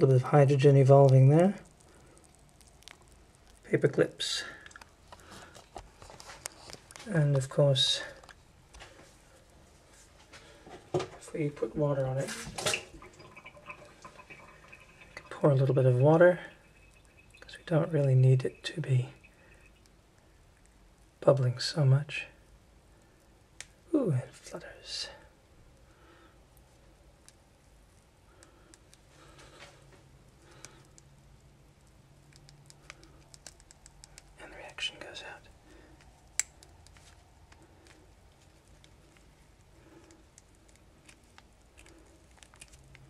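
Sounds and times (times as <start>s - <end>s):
bubbles ticking and fizzing: 0.0s - 6.0s, 11.0s - 21.2s.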